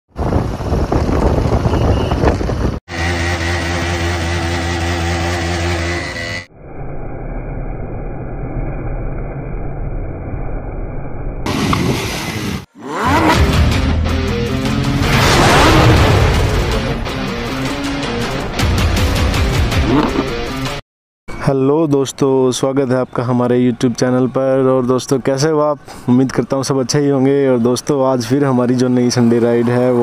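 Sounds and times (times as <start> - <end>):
motorcycle engine: 0.2 - 6.5
engine revving: 2.8 - 6.5, 11.5 - 18.3.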